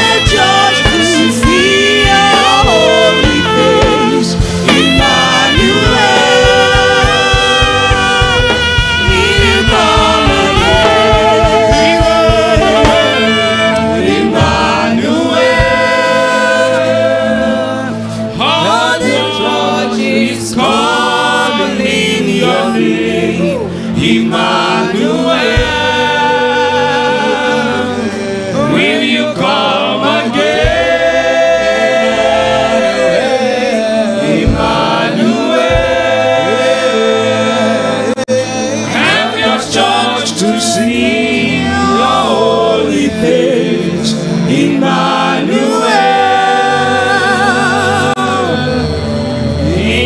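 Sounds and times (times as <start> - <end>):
man singing into a microphone: 0.0 - 14.7, 36.3 - 50.0
held musical notes: 0.0 - 50.0
instrumental backing: 0.0 - 50.0
several voices singing: 0.0 - 50.0.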